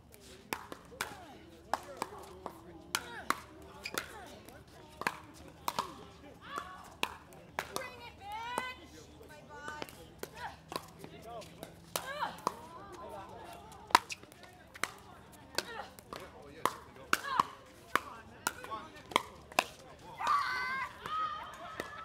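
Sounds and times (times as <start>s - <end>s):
faint voices: 0.0s - 22.0s.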